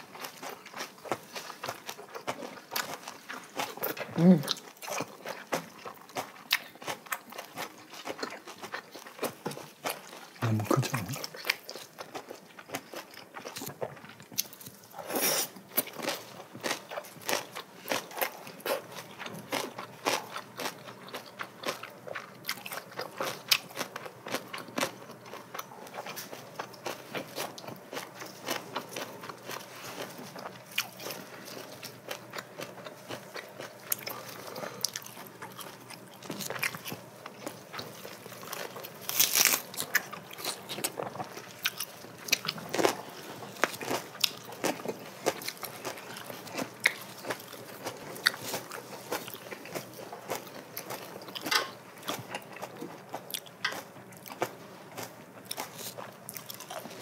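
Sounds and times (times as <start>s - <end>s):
people chewing and crunching food: 0.0s - 57.0s.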